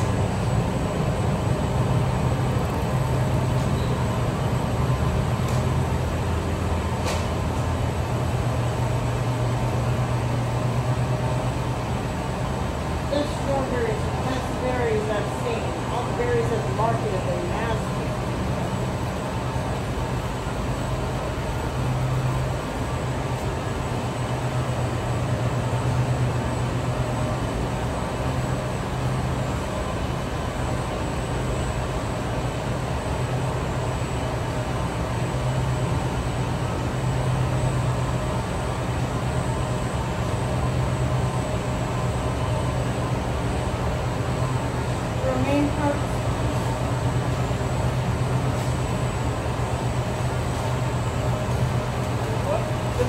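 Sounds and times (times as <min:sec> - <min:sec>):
evaporator fans humming: 0:00.0 - 0:53.0.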